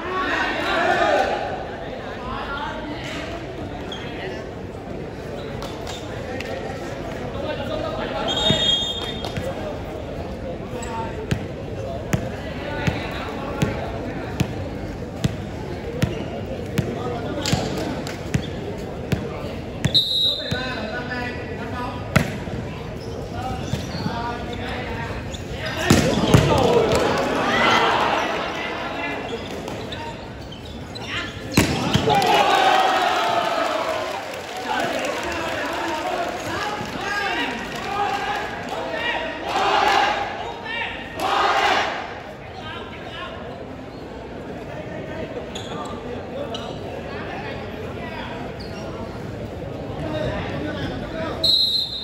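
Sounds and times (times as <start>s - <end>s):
crowd chatter: 0.0s - 52.0s
crowd cheering and shouting: 31.8s - 40.2s.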